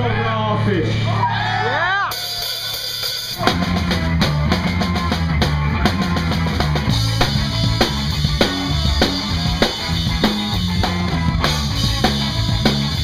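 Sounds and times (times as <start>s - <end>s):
electric bass: 0.0s - 1.8s, 3.4s - 13.0s
drum kit beat: 1.9s - 13.0s.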